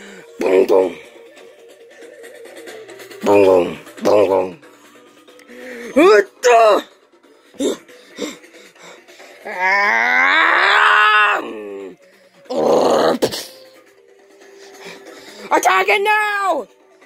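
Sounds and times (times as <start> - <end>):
person yelping: 9.4 - 11.7.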